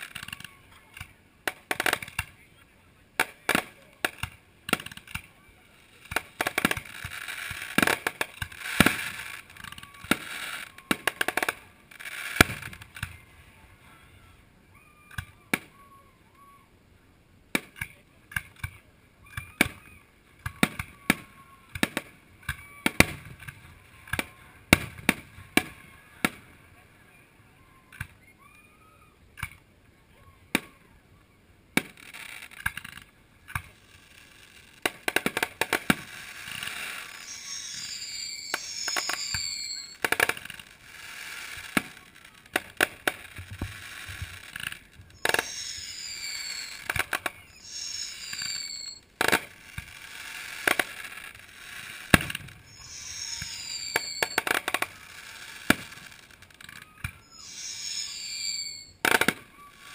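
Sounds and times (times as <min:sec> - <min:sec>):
fireworks crackling: 0:00.0 - 0:14.0, 0:19.4 - 0:26.7, 0:31.8 - 0:59.9
fireworks hissing: 0:03.2 - 0:13.1, 0:32.0 - 0:59.9
firework shells bursting: 0:31.8 - 0:59.9.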